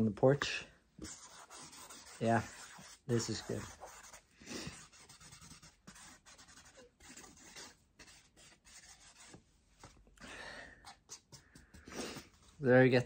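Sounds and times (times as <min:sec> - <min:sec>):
marker pen scratching on card: 0:01.0 - 0:09.4, 0:10.8 - 0:12.3.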